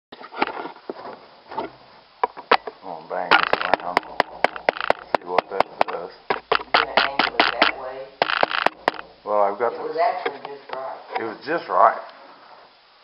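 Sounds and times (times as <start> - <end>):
muffled voices: 2.8 - 12.1
rapid sharp clicks: 3.3 - 9.1.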